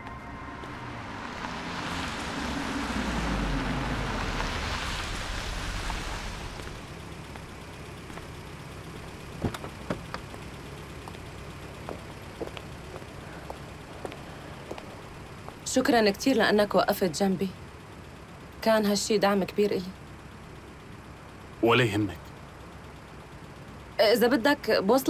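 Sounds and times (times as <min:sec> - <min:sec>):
footsteps: 0:00.0 - 0:02.6, 0:04.1 - 0:08.4, 0:11.8 - 0:15.6
car driving up and stopping: 0:00.0 - 0:24.0
car door: 0:09.4 - 0:10.3.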